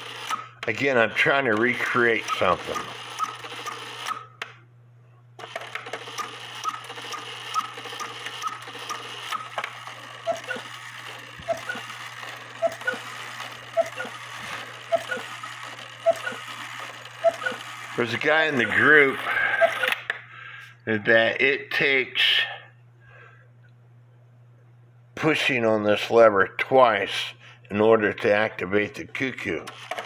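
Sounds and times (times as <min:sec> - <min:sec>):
clock mechanism clicking: 0:00.0 - 0:00.4, 0:01.4 - 0:04.2, 0:05.4 - 0:18.0.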